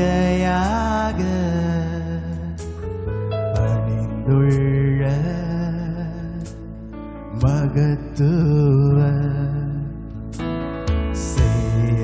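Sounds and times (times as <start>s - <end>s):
man singing worship song: 0.0s - 2.8s, 3.8s - 10.3s, 11.2s - 12.0s
sustained keyboard backing: 0.0s - 12.0s.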